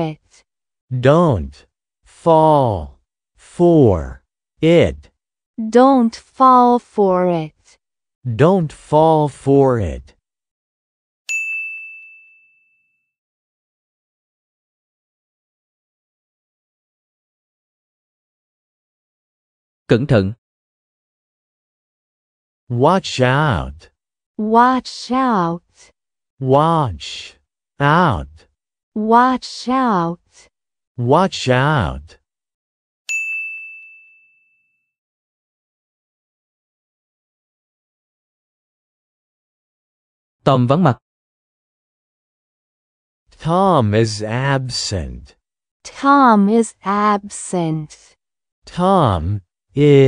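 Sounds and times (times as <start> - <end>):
bright high chime: 11.3 - 12.8, 33.1 - 34.7
bell-like ding: 11.3 - 13.0, 33.1 - 34.8.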